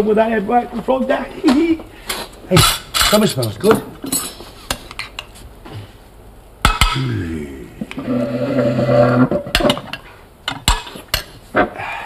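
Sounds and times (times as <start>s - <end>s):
metal utensil scraping pottery: 2.2s - 5.2s.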